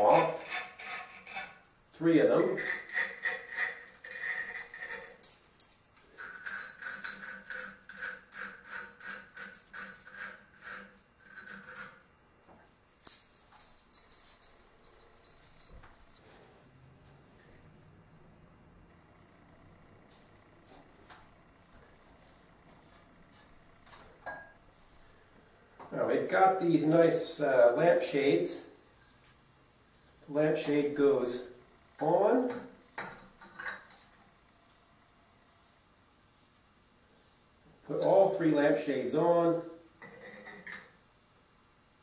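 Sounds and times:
metallic rasping and jingling: 2.6s - 12.1s, 13.0s - 16.2s.

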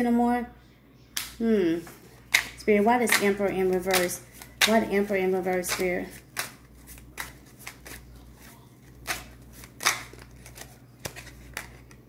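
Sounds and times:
cards being shuffled: 1.8s - 12.0s.

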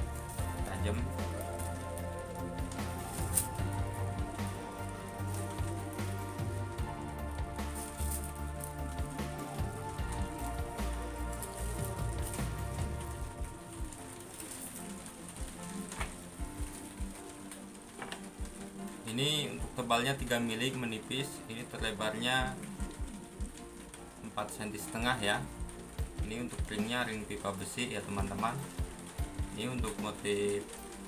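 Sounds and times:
background music with bass line: 0.0s - 31.0s
plastic bag crinkling: 0.0s - 31.0s.

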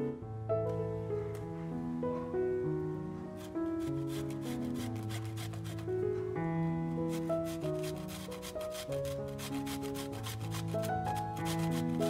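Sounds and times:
soft background music: 0.0s - 12.0s
cucumber scraping on grater: 3.4s - 5.9s, 7.1s - 12.0s.

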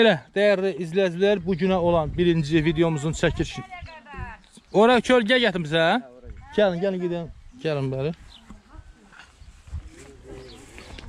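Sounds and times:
footsteps on gravel: 8.2s - 11.0s.

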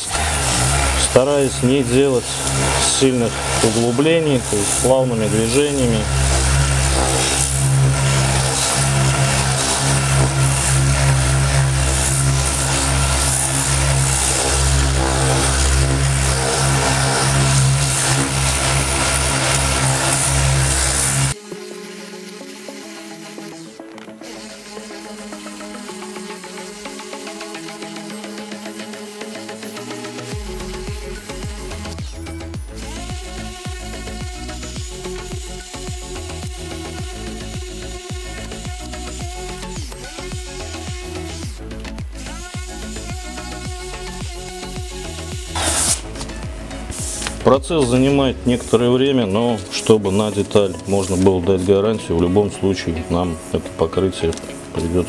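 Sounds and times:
electronic music with beat: 0.0s - 55.0s
orbital sander running: 0.0s - 55.0s.

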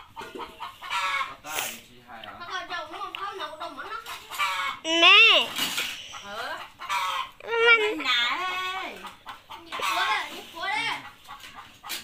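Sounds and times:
hens clucking: 0.0s - 12.0s.

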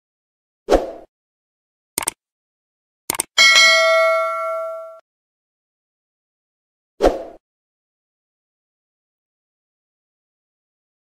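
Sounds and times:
short clicks: 2.0s - 2.2s, 3.1s - 3.4s
notification bell ding: 3.4s - 5.0s.

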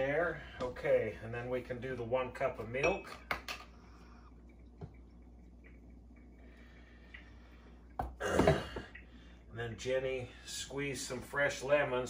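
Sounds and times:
man clearing his throat: 8.2s - 8.9s.

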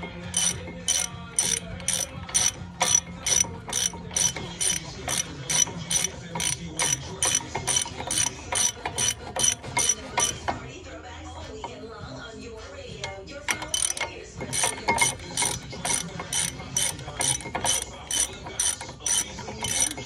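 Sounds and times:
ratchet wrench clicking: 0.0s - 10.6s, 13.0s - 20.0s.

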